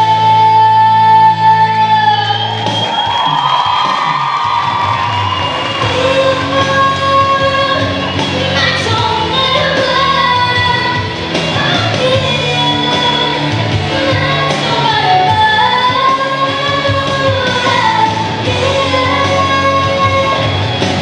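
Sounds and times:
woman singing into a microphone: 0.0 - 2.5, 5.8 - 21.0
musical accompaniment: 0.0 - 21.0.

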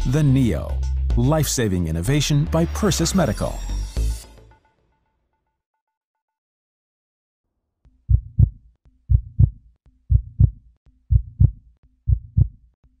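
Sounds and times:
heartbeat thumping: 8.1 - 12.6.

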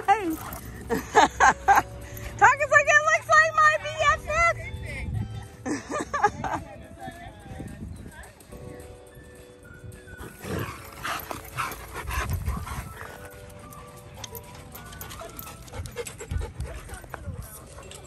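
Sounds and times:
dog panting: 10.1 - 18.0.

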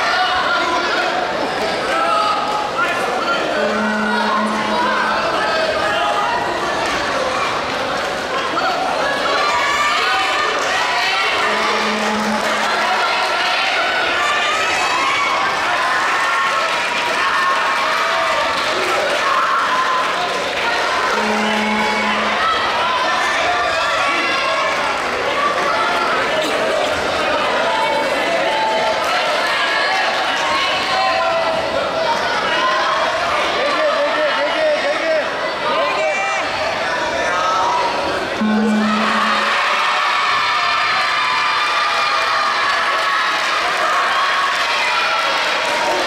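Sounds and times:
crowd shouting: 0.0 - 46.0
low buzzer tone: 3.2 - 5.8, 11.3 - 12.8, 21.0 - 22.7, 38.4 - 40.0.

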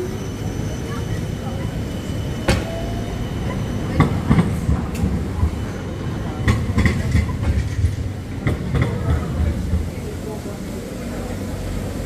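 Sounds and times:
tram rumbling on rails: 0.0 - 12.0.

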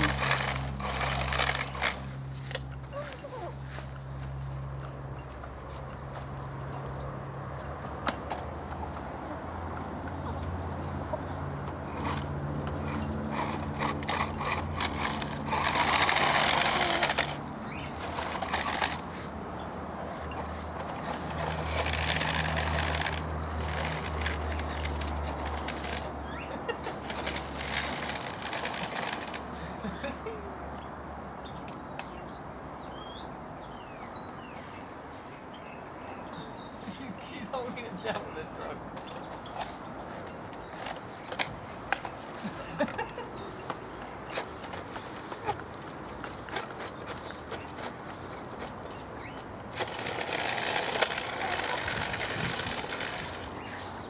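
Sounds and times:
beaks tapping: 4.0 - 54.0.

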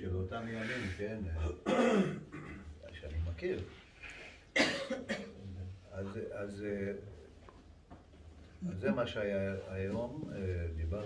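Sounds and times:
person coughing: 1.4 - 2.7, 4.6 - 5.4.

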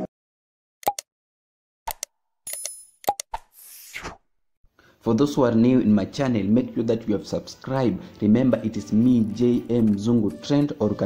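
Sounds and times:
button clicks: 0.8 - 1.0.

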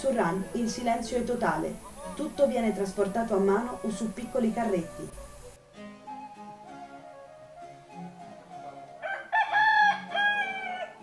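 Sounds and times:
rooster crowing: 9.0 - 11.0.

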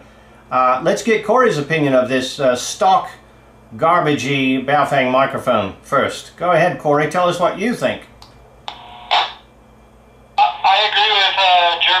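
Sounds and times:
radio static hiss: 8.7 - 9.4, 10.4 - 12.0
voice through radio speaker: 10.4 - 12.0.

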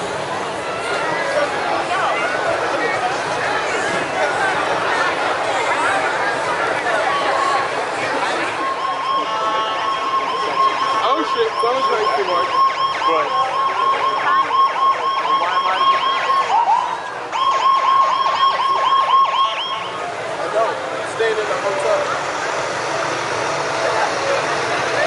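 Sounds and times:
crowd voices: 0.0 - 25.0
siren yelping: 8.6 - 19.9.

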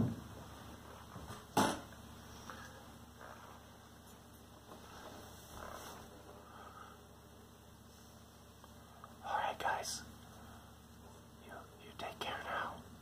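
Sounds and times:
faint steady hum: 0.0 - 13.0
person whispering: 9.2 - 10.1, 11.4 - 13.0.

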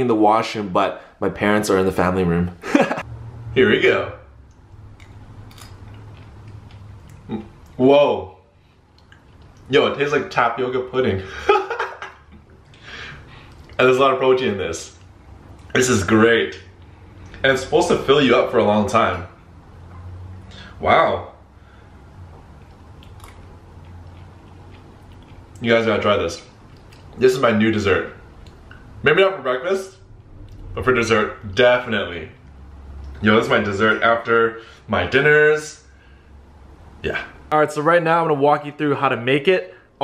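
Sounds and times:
steady low hum: 0.0 - 40.0
mouth clicks chewing: 22.6 - 25.6, 26.5 - 27.2.

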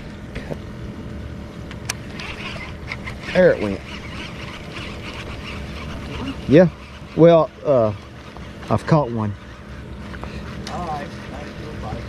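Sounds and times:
fishing reel whirring: 1.9 - 12.0.

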